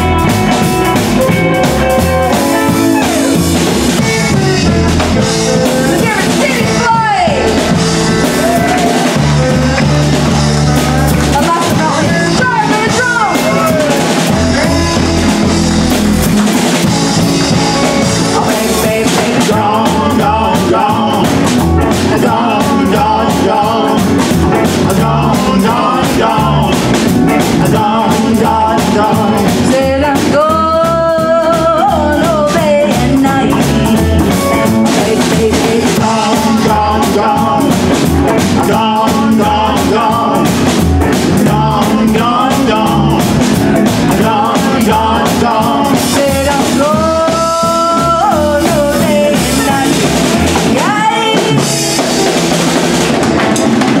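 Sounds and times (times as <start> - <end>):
drum kit: 0.0 - 54.0
guitar: 0.0 - 54.0
live swing band playing: 0.0 - 54.0
upright bass: 0.0 - 54.0.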